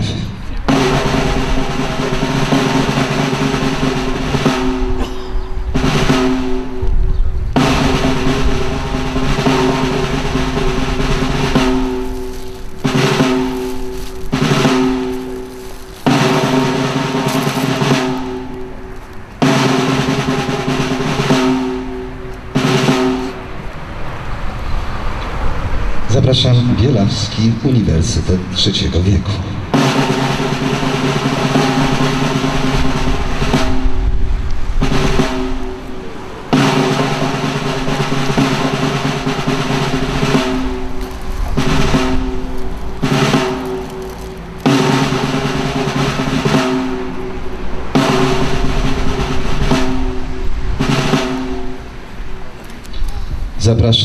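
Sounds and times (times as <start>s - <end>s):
snare drum rolls: 0.0s - 23.5s, 28.8s - 52.0s.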